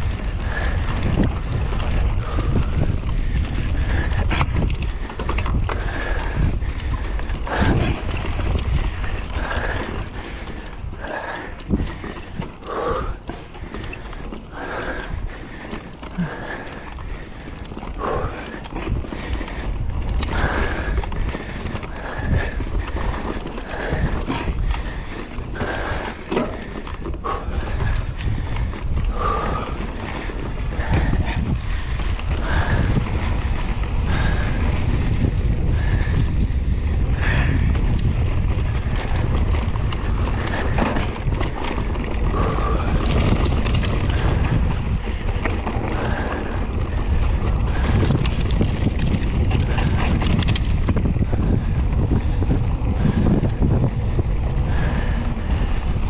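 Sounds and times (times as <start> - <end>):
bike rattling and knocking: 0.0 - 56.0
wind buffeting microphone: 0.0 - 56.0.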